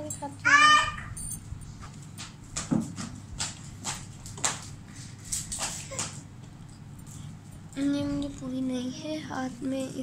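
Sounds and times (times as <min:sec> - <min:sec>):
low steady hum: 0:00.0 - 0:02.6, 0:03.2 - 0:10.0
metal bracelets clinking: 0:01.2 - 0:01.5.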